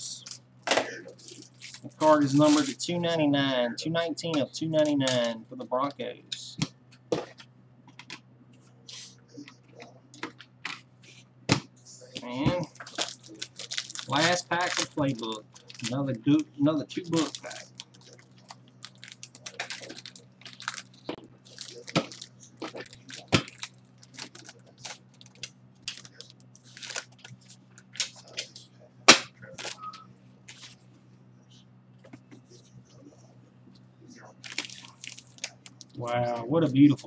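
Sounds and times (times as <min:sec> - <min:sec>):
low electrical hum: 0:00.0 - 0:37.0
foil wrapper crinkling: 0:01.1 - 0:02.8, 0:12.2 - 0:28.5, 0:29.4 - 0:29.8, 0:34.4 - 0:36.0.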